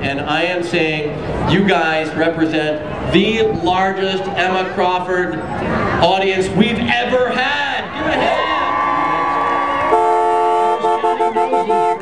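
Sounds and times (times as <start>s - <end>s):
car horn honking: 9.9s - 12.0s.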